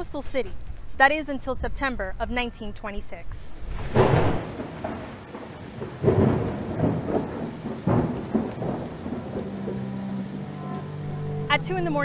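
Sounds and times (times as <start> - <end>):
steady rain: 3.5 - 12.0
thunder claps and rolls: 3.6 - 10.5.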